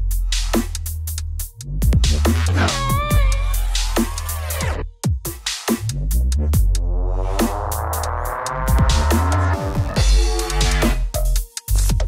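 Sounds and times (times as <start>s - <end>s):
dubstep music: 0.0s - 12.0s.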